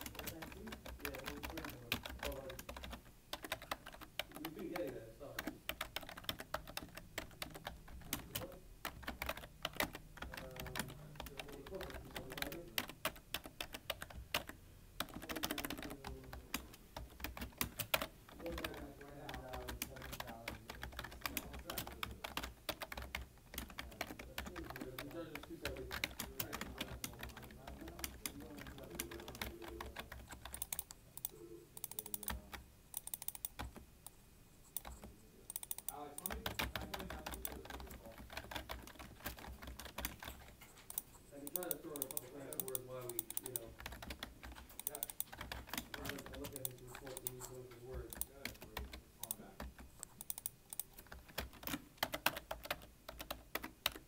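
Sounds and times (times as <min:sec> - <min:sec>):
fast typing on keyboard: 0:00.0 - 0:33.8, 0:34.7 - 0:54.0.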